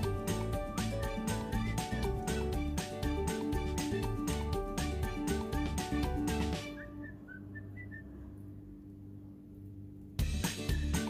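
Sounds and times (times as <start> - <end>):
background music: 0.0 - 7.4, 10.2 - 11.0
low steady hum: 2.6 - 10.8.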